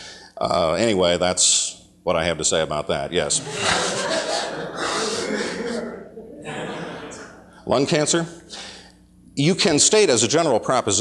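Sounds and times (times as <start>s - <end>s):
audience laughing: 3.3s - 7.6s.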